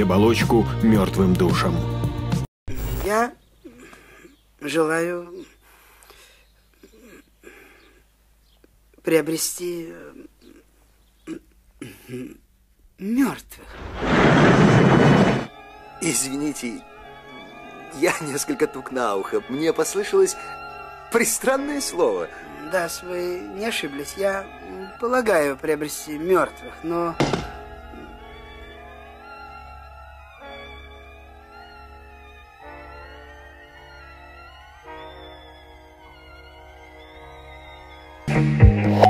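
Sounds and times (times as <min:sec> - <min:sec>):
bowed strings chord: 0:15.5 - 0:39.0
pipe dropping onto floor: 0:27.2 - 0:27.6.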